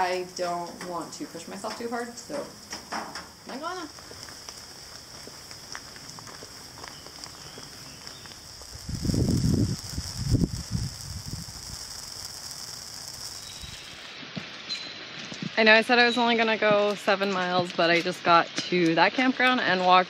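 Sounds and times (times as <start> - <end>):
rain falling on foliage: 1.6 - 17.3
low rumbles on microphone: 8.5 - 11.9.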